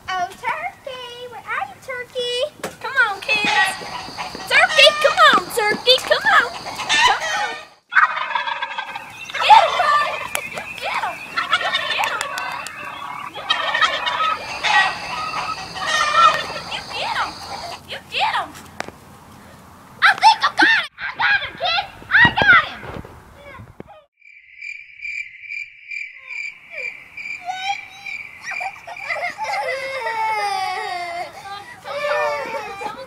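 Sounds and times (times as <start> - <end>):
turkeys gobbling: 3.1 - 17.8, 26.7 - 29.6.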